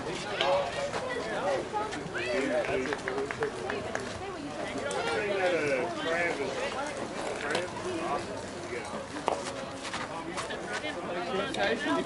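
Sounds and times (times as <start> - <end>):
players' voices chattering: 0.0 - 12.0.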